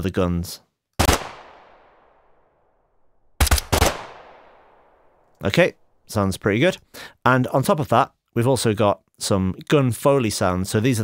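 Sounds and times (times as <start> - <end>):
automatic rifle gunfire: 1.0 - 2.1, 3.4 - 5.1.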